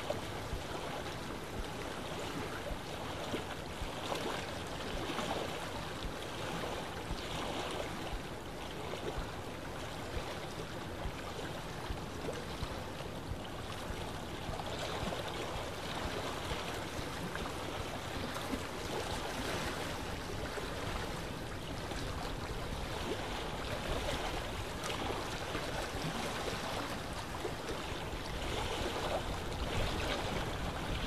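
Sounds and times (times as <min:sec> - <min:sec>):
river water flowing: 0:00.0 - 0:31.0.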